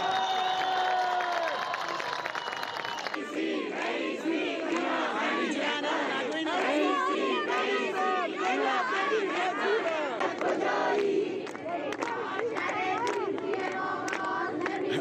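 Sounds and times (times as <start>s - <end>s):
crowd shouting: 0.0s - 12.4s
crowd chanting in rhythm: 3.0s - 15.0s.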